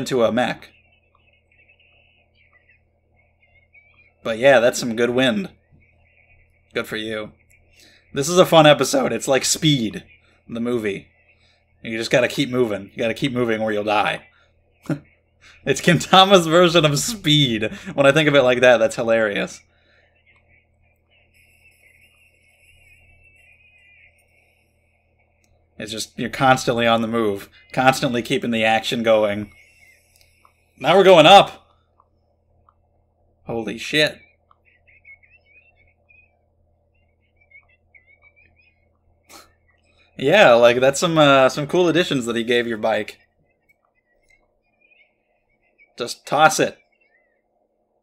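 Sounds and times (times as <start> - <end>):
faint wavering high-pitched sound: 0.0 - 48.0
steady low hum: 0.0 - 48.0
faint wavering high sound: 18.2 - 31.6.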